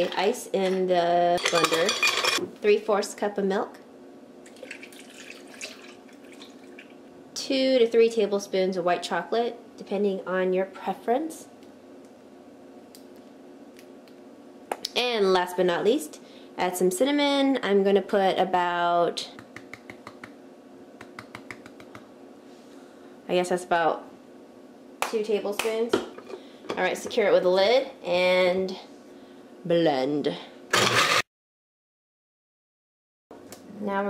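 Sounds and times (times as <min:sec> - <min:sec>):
milk pouring over ice: 0:04.5 - 0:07.0.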